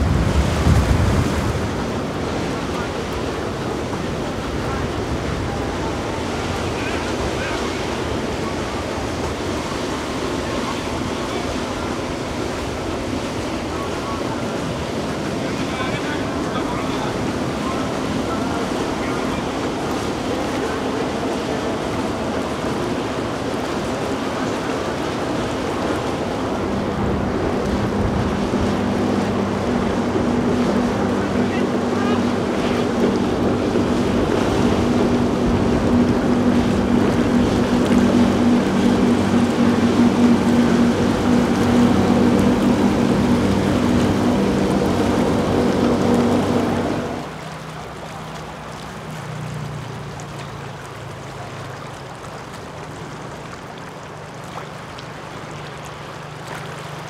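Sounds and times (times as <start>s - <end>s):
boat engine drone: 0.0s - 57.0s
rush of wake and water: 0.0s - 57.0s.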